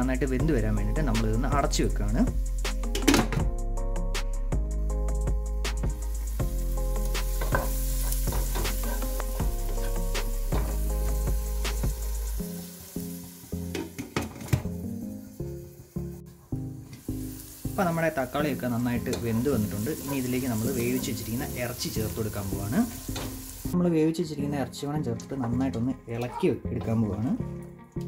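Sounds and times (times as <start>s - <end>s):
background music: 0.0s - 28.0s
masala sizzling in a pan: 5.2s - 23.8s
spatula clicking and scraping pan: 6.9s - 11.2s.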